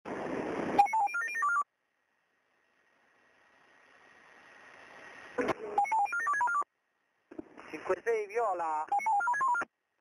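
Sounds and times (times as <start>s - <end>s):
short electronic beeps: 0.8s - 1.7s, 5.6s - 6.7s, 8.9s - 9.7s
radio hiss: 7.5s - 8.7s.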